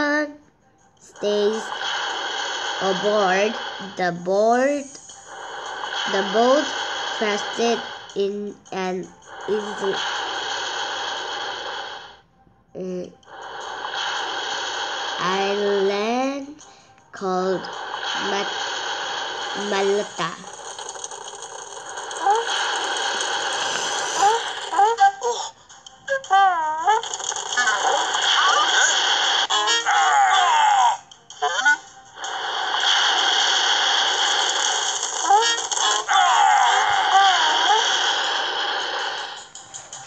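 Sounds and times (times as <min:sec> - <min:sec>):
background music: 0:00.0 - 0:40.0.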